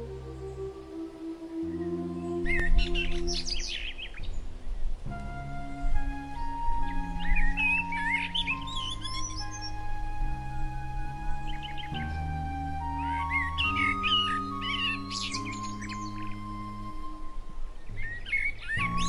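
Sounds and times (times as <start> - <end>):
ambient music with sustained chords: 0.0 - 19.0
birds chirping: 0.0 - 19.0.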